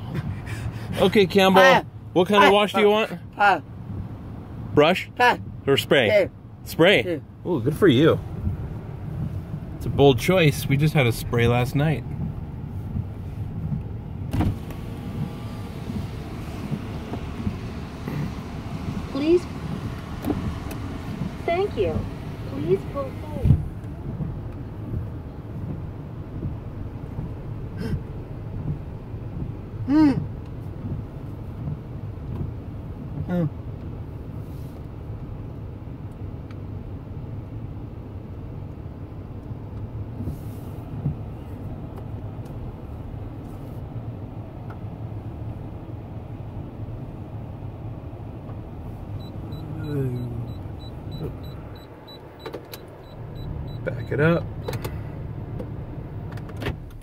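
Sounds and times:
car engine idling: 0.0s - 34.7s, 39.4s - 57.0s
high beeps: 49.2s - 54.2s.

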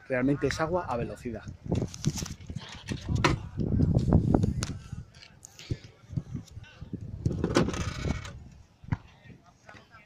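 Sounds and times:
plastic scraping clatter: 7.3s - 8.4s.

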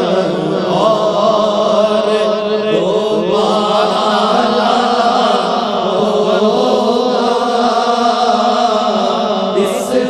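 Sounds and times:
men chanting devotional verse: 0.0s - 10.0s.

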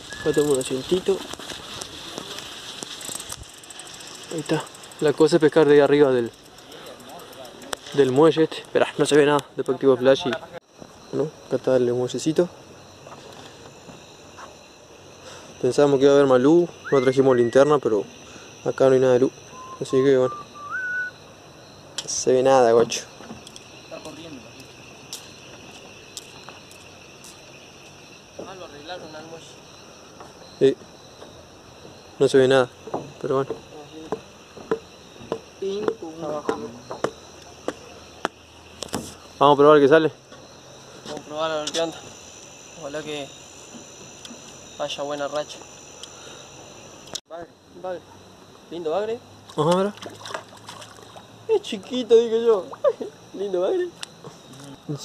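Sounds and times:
crackling of dry grass: 0.0s - 5.6s
crickets trilling: 0.0s - 55.0s.

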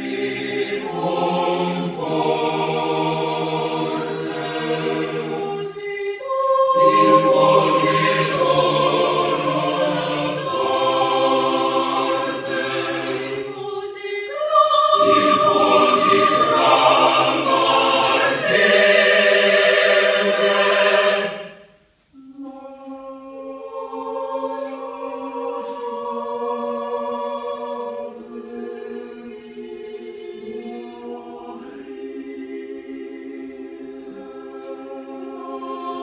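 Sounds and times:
mixed choir singing a cappella: 0.0s - 36.0s.

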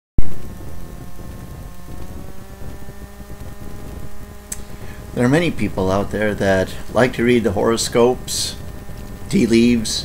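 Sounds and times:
faint steady hum: 0.2s - 10.0s.

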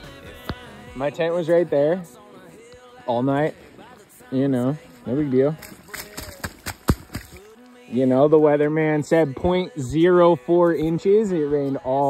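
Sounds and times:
man talking: 1.0s - 2.1s, 3.1s - 3.6s, 4.2s - 6.4s, 7.9s - 12.0s
footsteps on muddy ground: 4.7s - 7.9s.

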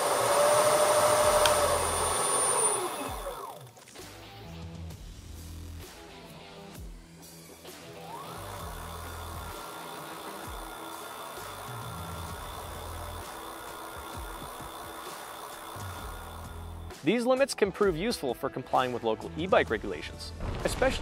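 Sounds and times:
electric hub motor whine: 0.0s - 3.7s, 7.4s - 17.0s
music with low beat: 4.6s - 17.1s.

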